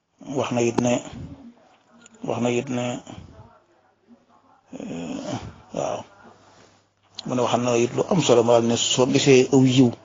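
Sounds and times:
person speaking: 0.1 - 10.0
drawn-out vocal sound: 0.2 - 6.8.

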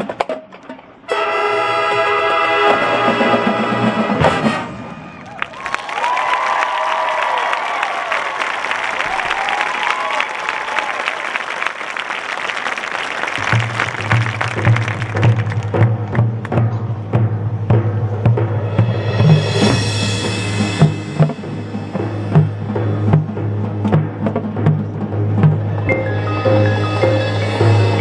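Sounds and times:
marching band brass chord: 1.1 - 5.1, 18.4 - 24.8
audience applause and cheering: 5.1 - 16.0
rhythmic percussion hits: 13.4 - 28.0.

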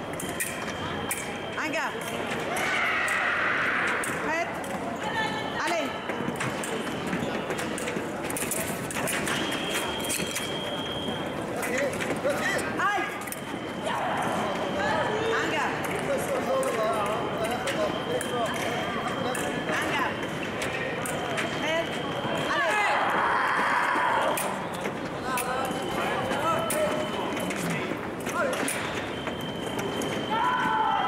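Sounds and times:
hum of voices in a hall: 0.0 - 31.0
squeaking shoe soles: 0.0 - 31.0.

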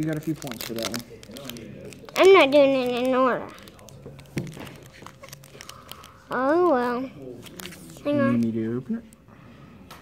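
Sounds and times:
foil wrapper crinkling: 0.0 - 6.2.

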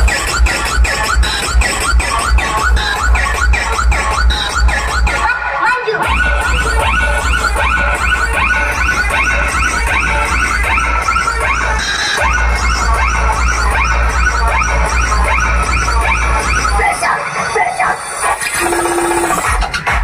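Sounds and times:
loud dance music with heavy bass: 0.0 - 20.0.

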